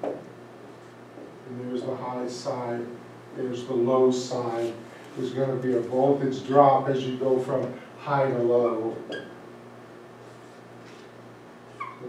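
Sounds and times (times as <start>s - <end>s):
room hum: 0.0s - 12.0s
high marker squeaks: 9.1s - 9.3s, 11.7s - 12.0s.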